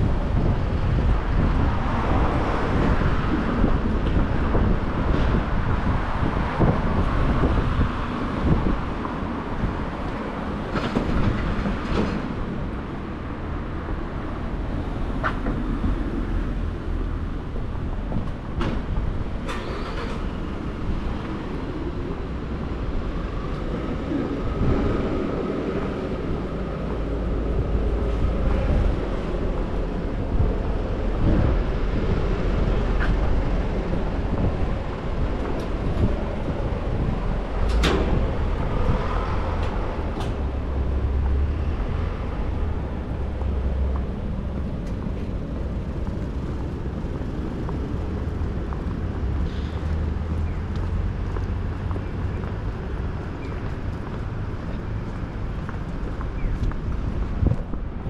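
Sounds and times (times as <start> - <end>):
road traffic rumble: 0.0 - 58.0.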